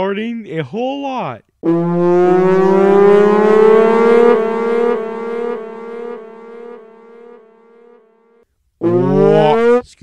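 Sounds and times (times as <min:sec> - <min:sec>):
low horn-like tone: 0:01.6 - 0:09.8.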